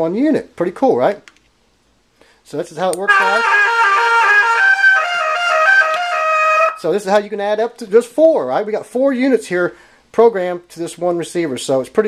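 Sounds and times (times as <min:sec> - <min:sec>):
horn speaker playing a tune: 0:03.1 - 0:06.8.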